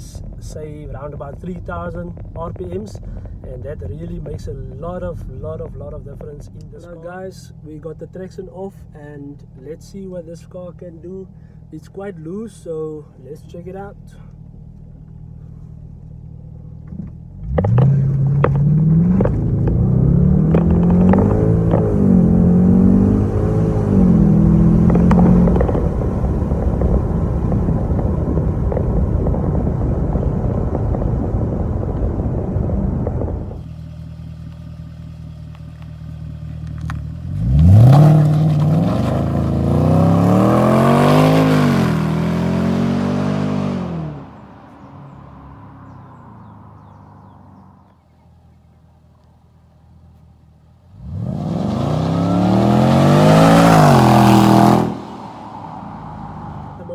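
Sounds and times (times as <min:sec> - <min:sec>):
car engine accelerating hard: 0:16.9 - 0:34.6, 0:35.8 - 0:48.0, 0:50.9 - 0:56.9.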